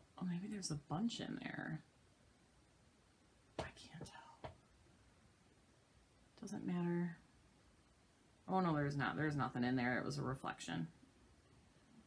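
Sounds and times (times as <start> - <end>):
woman whispering: 3.6 - 4.5.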